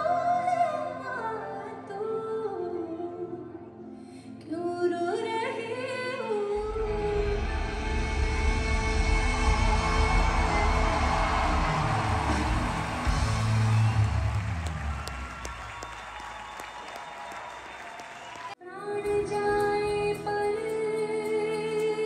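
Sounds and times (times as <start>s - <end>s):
band music: 6.7s - 16.0s
audience applauding and cheering: 8.2s - 18.6s.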